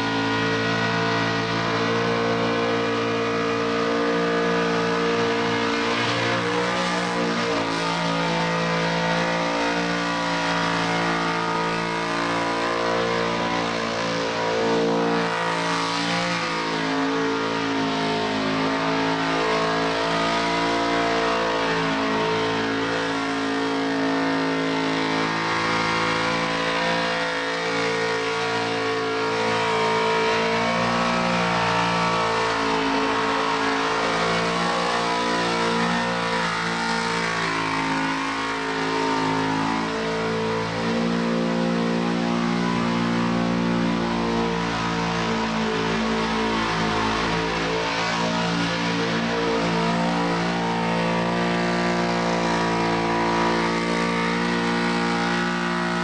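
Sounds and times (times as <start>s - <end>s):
car engine revving high: 0.0s - 56.0s.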